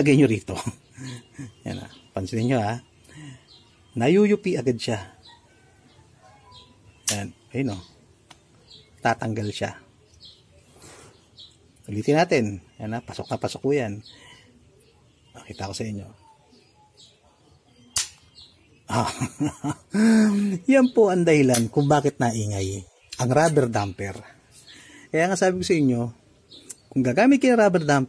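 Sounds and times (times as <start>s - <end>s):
faint bird chirps: 0.0s - 28.0s.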